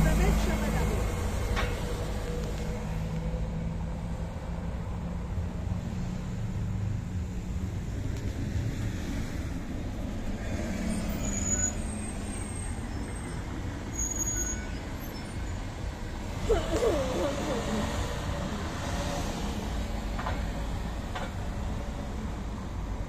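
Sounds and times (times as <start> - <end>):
bus engine drone: 0.0 - 23.0
road traffic rumble: 0.0 - 23.0.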